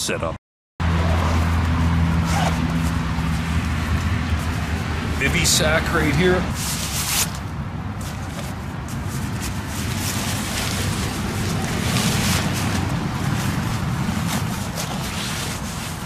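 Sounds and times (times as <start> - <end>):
heavy road traffic rumble: 0.0 - 16.0
nylon fabric rustling: 1.0 - 5.2, 6.5 - 16.0.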